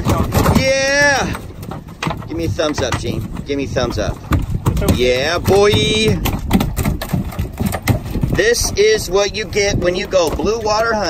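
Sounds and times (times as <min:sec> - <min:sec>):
knocks and clatters on boat deck: 0:00.0 - 0:11.0
wind on microphone: 0:00.0 - 0:11.0.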